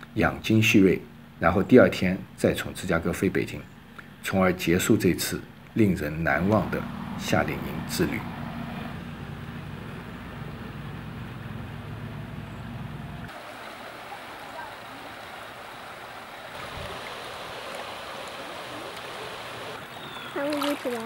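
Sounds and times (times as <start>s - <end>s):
river running over rocks: 13.3s - 21.0s.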